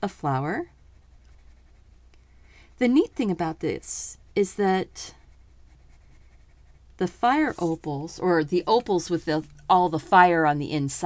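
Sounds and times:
pencil scratching on paper: 0.2 - 2.1, 2.7 - 9.4
person speaking: 2.8 - 5.2, 7.0 - 11.0.

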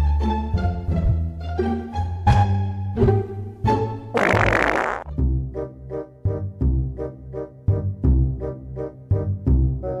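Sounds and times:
loud fart sound: 4.2 - 5.1.

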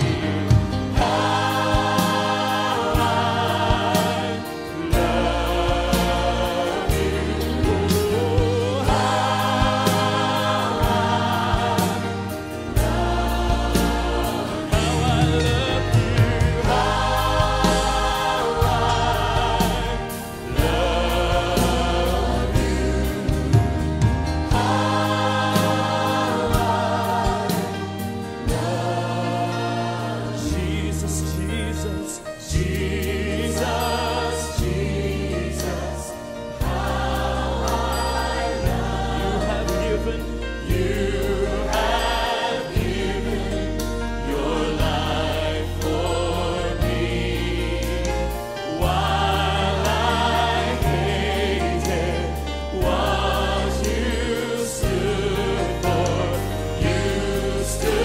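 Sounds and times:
bass: 0.0 - 58.0
choir singing: 0.0 - 58.0
drums: 0.0 - 58.0.

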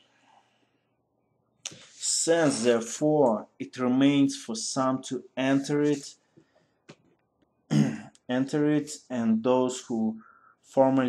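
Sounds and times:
man speaking: 1.7 - 6.3, 8.2 - 11.0.

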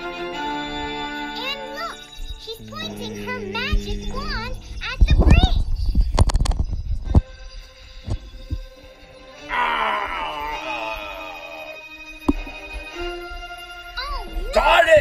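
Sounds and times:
heavy low thumps: 2.6 - 6.2.

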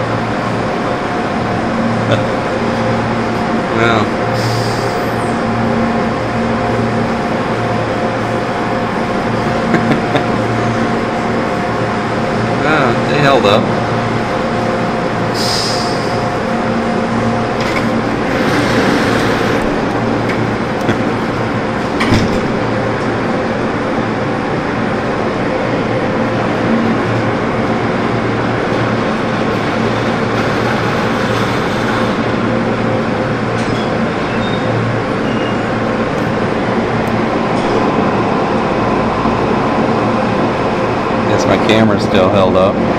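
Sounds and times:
machine hum: 0.0 - 42.9.

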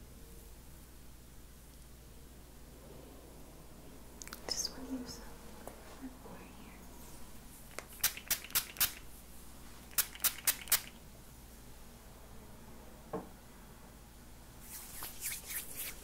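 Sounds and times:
soft rustling: 4.4 - 8.0, 14.6 - 16.0
spray bottle spraying: 7.8 - 9.0, 9.9 - 11.0.

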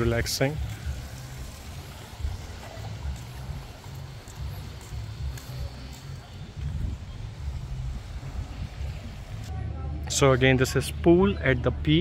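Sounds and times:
wind buffeting microphone: 0.0 - 9.5
faint outdoor hiss: 0.0 - 12.0.

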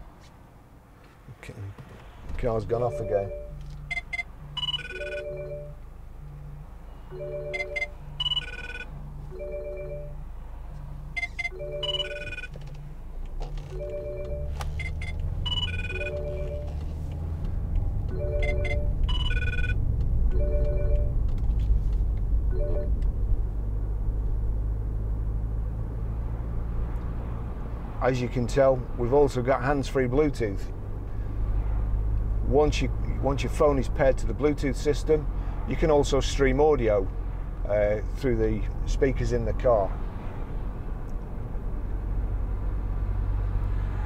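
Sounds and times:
diesel engine rumble: 1.0 - 44.0
phone ringtone melody: 2.8 - 5.8, 7.1 - 10.2, 11.2 - 12.6, 13.7 - 16.8, 18.1 - 21.2, 22.5 - 22.9.

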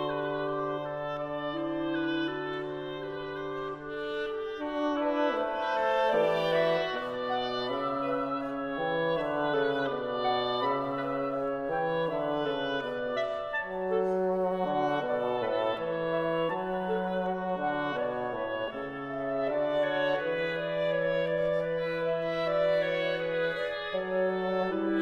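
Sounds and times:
clarinet: 0.0 - 25.0
oboe: 0.0 - 25.0.

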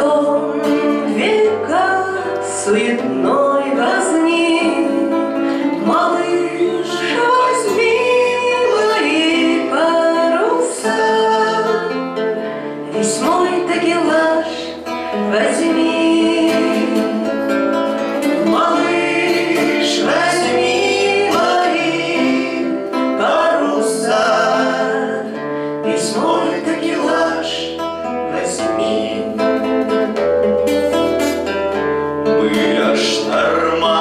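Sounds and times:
woman singing: 0.0 - 12.2, 12.9 - 29.4, 32.4 - 34.0
acoustic guitar: 0.0 - 34.0.

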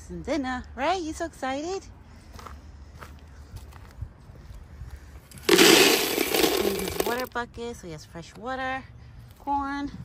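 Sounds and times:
footsteps on dry leaves: 5.5 - 7.2.

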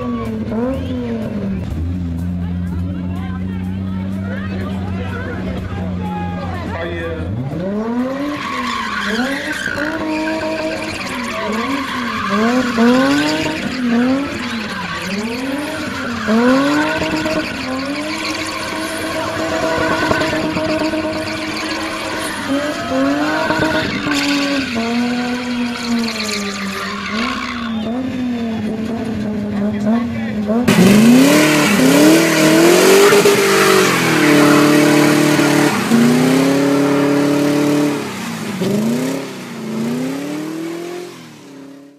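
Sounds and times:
tyres spinning and squealing: 4.2 - 41.9
car engine revving hard: 6.6 - 41.9.

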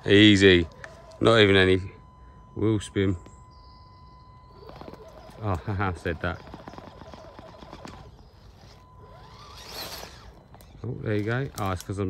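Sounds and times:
toy car motor and gears whining: 0.0 - 2.2, 3.4 - 12.0
tyres rustling in moss and twigs: 4.5 - 12.0
small clicks: 4.6 - 12.0.

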